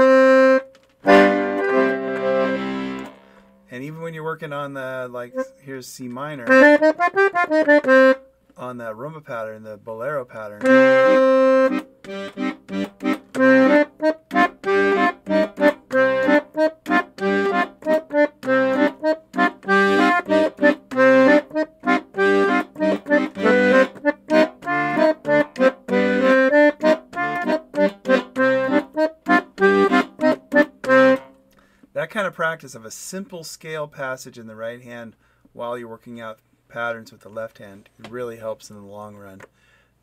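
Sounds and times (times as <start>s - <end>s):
piano accordion bolero: 0.0s - 3.4s, 6.4s - 8.2s, 10.6s - 31.3s.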